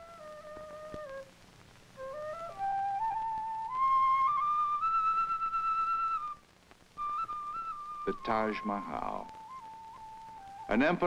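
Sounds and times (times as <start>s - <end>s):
solo flute melody: 0.0s - 11.0s.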